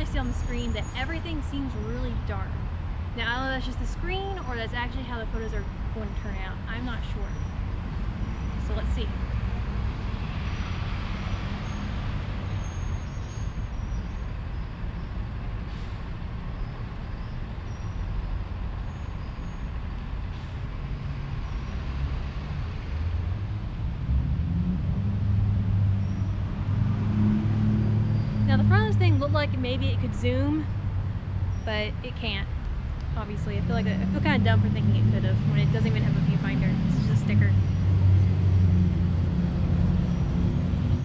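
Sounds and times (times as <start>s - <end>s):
large vehicle engine humming: 0.0s - 41.0s
street traffic rumble: 0.0s - 41.0s.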